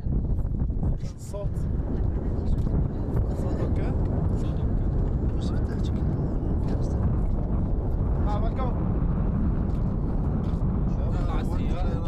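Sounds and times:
steady low rumble: 0.0s - 12.0s
people talking: 0.9s - 7.3s, 8.2s - 8.8s, 10.9s - 12.0s.

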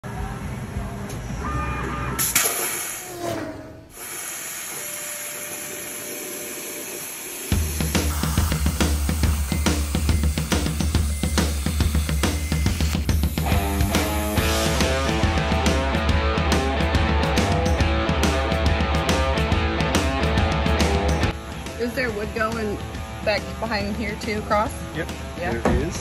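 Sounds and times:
plasma torch hissing: 2.2s - 14.5s
rock music with heavy beat: 7.6s - 26.0s.

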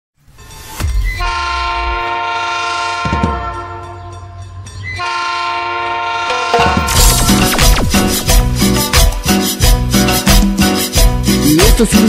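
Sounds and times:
train horn blasts: 1.2s - 4.2s, 5.0s - 7.0s.

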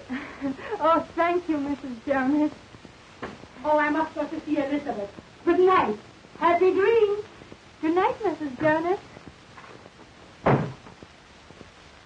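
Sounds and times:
wooden door slamming shut: 10.4s - 10.9s.

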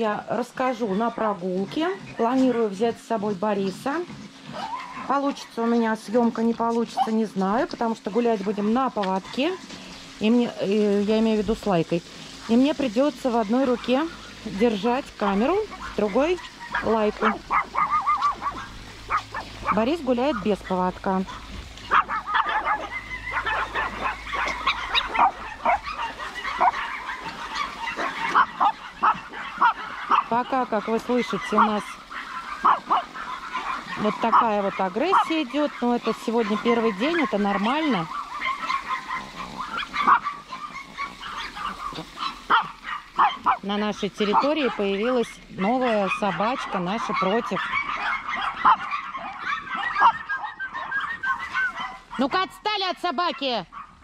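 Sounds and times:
small dogs yapping and barking: 0.0s - 54.0s.

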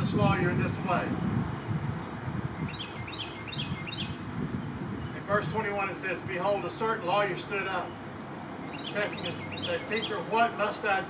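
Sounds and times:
songbird chirping: 2.5s - 5.2s, 7.6s - 10.5s.

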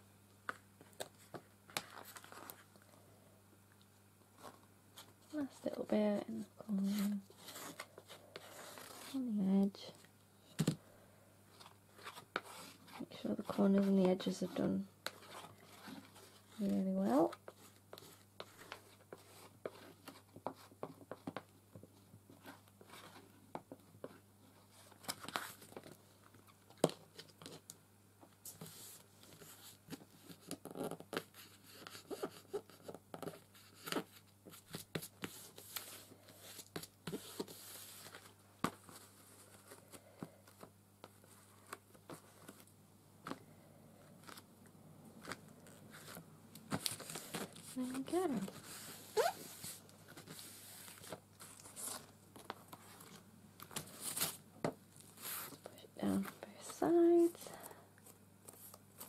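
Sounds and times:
paper rustling and crinkling: 0.8s - 2.8s, 4.4s - 9.3s, 24.6s - 26.0s, 28.5s - 43.4s, 45.2s - 59.0s.

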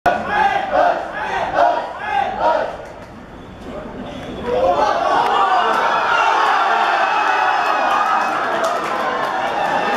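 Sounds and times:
people shouting: 0.1s - 2.8s, 4.5s - 8.4s.

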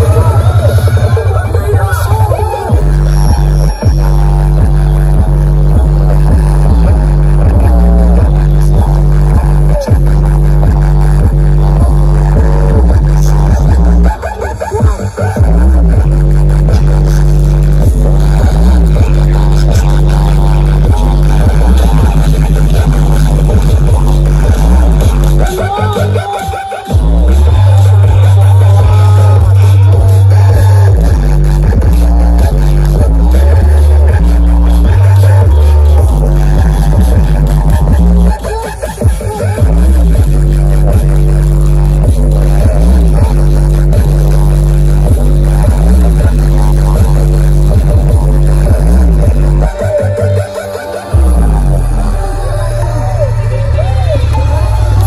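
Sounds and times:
loud electronic music with heavy bass: 0.0s - 55.0s.

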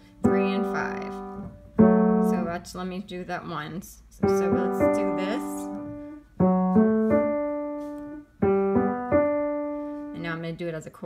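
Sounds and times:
piano broken chords: 0.0s - 10.6s.

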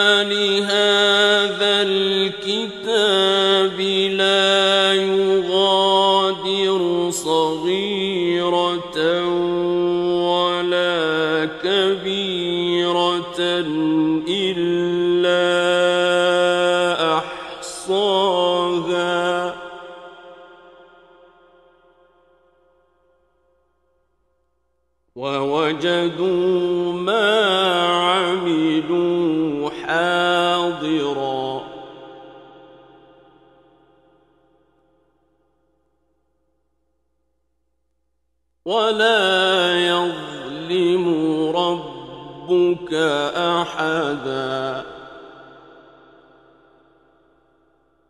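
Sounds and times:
man chanting recitation: 0.0s - 20.1s, 25.2s - 32.1s, 38.7s - 45.7s.

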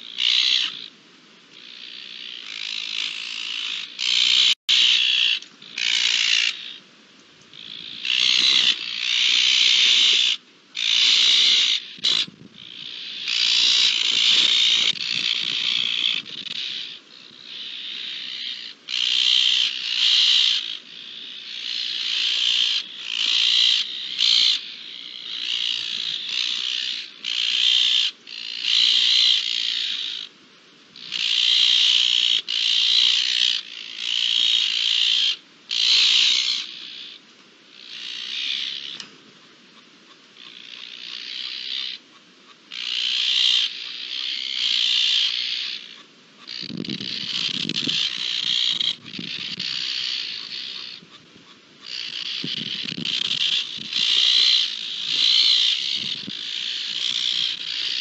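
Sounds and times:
magpies harsh alarm calls: 0.0s - 58.0s.

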